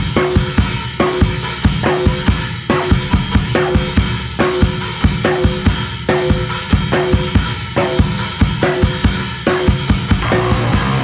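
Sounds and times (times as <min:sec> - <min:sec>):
drum kit beat: 0:00.0 - 0:11.0.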